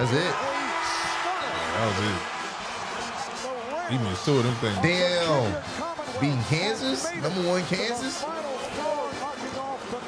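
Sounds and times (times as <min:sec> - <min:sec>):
men talking: 0:00.0 - 0:02.4, 0:03.0 - 0:10.0
basketball game broadcast: 0:00.0 - 0:10.0.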